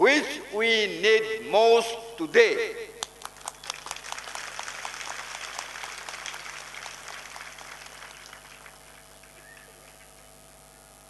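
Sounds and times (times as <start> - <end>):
audience applause: 3.2 - 10.3.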